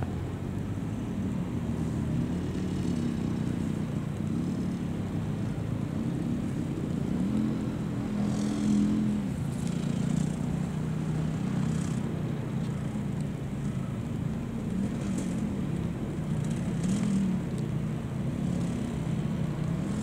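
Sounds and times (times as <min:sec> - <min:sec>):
car engine revving: 0:01.8 - 0:12.2.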